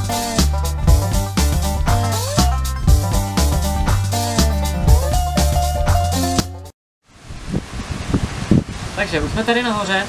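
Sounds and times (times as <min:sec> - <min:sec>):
low thumps from wind gusts: 0:07.1 - 0:09.5
wind noise on microphone: 0:07.1 - 0:09.7.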